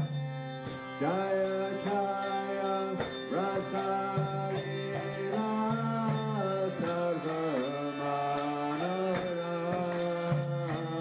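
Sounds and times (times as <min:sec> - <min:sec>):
hand cymbals: 0:00.0 - 0:11.0
person singing: 0:00.8 - 0:11.0.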